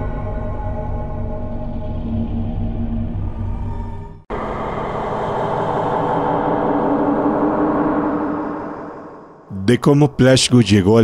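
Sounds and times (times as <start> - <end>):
dark rumbling ambient drone: 0.0 - 9.6.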